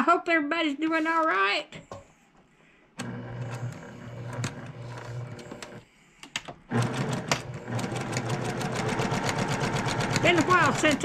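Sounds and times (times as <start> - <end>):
sewing machine stitching: 3.0 - 5.8, 6.7 - 11.0.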